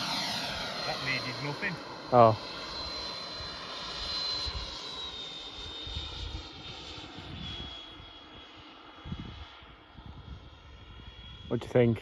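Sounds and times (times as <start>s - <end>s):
model jet high whine: 0.0s - 12.0s.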